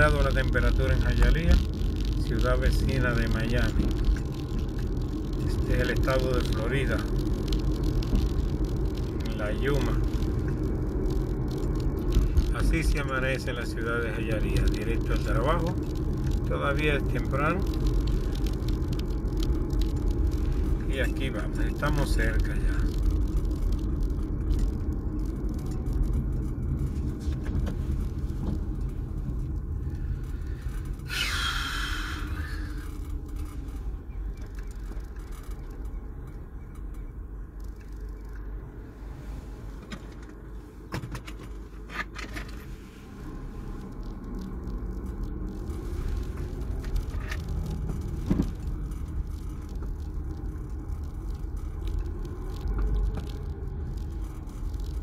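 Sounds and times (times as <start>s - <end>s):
car road and engine rumble: 0.0s - 55.0s
loud hiss: 31.0s - 32.7s.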